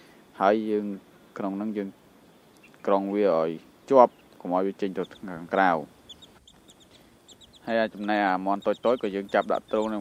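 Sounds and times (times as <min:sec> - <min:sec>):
chicks peeping: 0:02.4 - 0:10.0.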